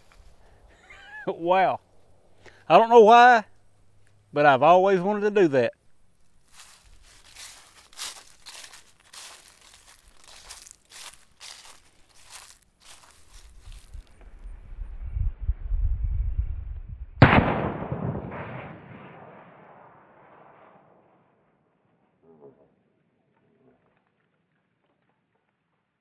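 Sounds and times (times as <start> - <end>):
rustling in dry leaves: 6.0 - 14.2
low rumble: 13.6 - 18.6.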